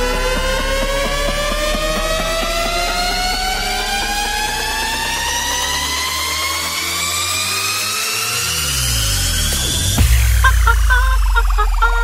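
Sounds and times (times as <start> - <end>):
bass sweep: 0.0 - 12.0
synth riser climbing in pitch: 0.0 - 12.0.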